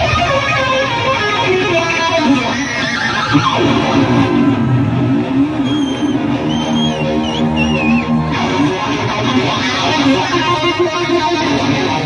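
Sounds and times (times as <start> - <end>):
rock band playing loud: 0.0 - 12.0
wavering guitar note: 0.0 - 12.0
high wavering guitar squeals: 2.5 - 12.0.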